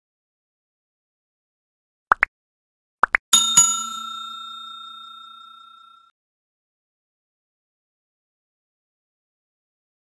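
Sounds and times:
bell-like ding ringing: 3.4 - 6.1.

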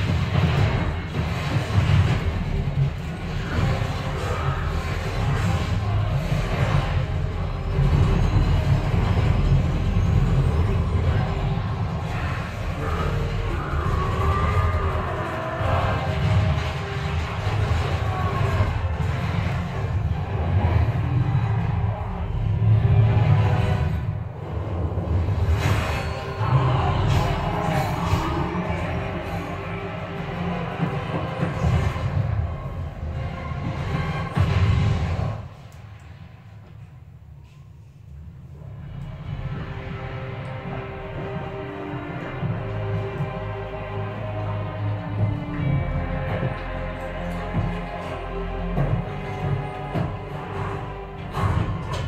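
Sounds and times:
action film music: 0.0 - 52.0
deep rumble of effects: 0.0 - 52.0.

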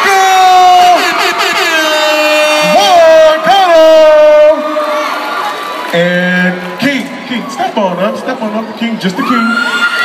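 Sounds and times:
crowd noise: 0.0 - 10.0.

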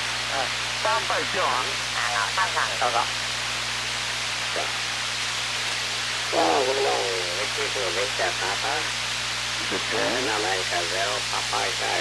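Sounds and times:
radio static hiss: 0.0 - 12.0
voice over radio: 6.3 - 8.9, 9.6 - 12.0.

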